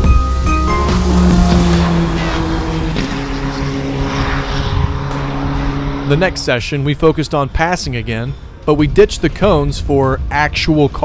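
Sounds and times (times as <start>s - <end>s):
race car engine passing: 0.0s - 8.6s.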